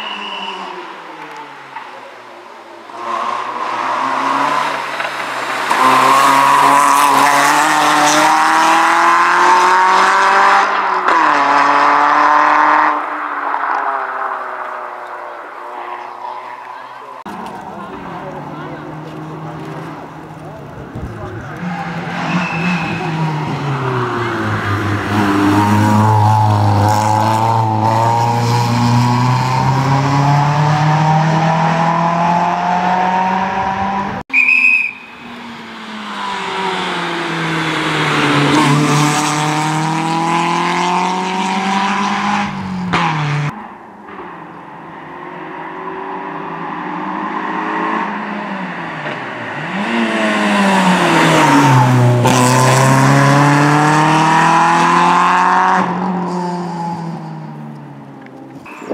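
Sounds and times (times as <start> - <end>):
rally car engine revving: 2.8 - 34.2, 35.1 - 58.9
car passing close: 35.1 - 43.6.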